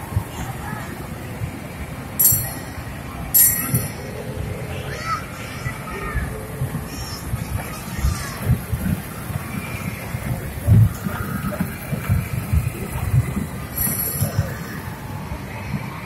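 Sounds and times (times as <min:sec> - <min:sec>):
ride train rumbling on track: 0:00.0 - 0:16.0
babble of voices: 0:03.6 - 0:15.5.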